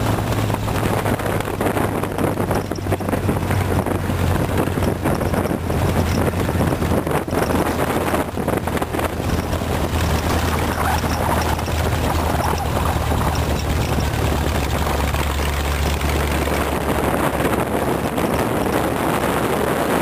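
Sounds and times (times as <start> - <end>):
car engine running: 0.0 - 20.0
wind buffeting microphone: 0.0 - 20.0.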